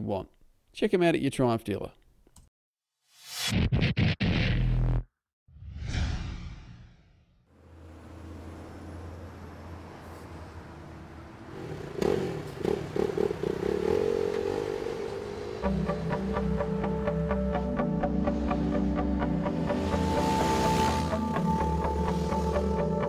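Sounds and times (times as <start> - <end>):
whoosh: 5.5 - 7.4
impact hit: 5.6 - 7.4
motorcycle engine revving: 11.4 - 16.9, 19.5 - 22.8.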